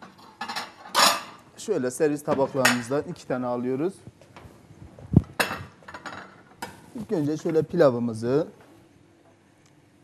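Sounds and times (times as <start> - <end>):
plates clattering on counter: 5.4 - 6.8.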